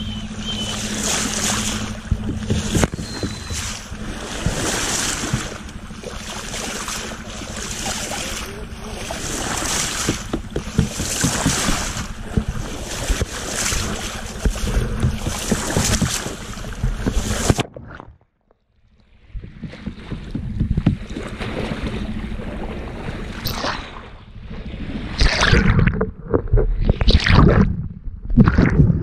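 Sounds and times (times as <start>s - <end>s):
sea water rushing and splashing: 0.0s - 18.1s, 19.1s - 26.0s, 26.7s - 27.8s.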